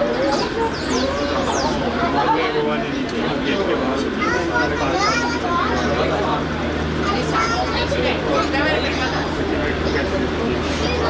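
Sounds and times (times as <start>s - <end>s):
passengers talking: 0.0s - 11.0s
child's high voice: 4.2s - 6.0s.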